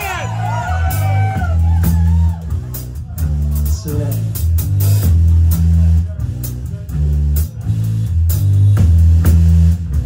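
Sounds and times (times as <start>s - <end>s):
bass guitar: 0.0s - 10.0s
drum kit: 0.0s - 10.0s.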